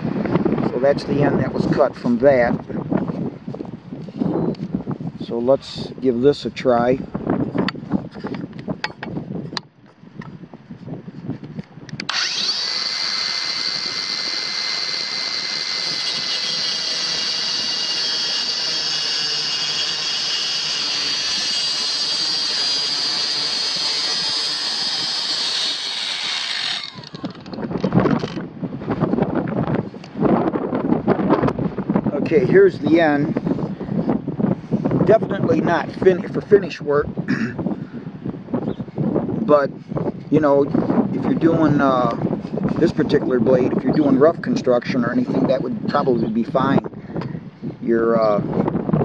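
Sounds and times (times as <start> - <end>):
circular saw cutting wood: 12.0 - 27.6.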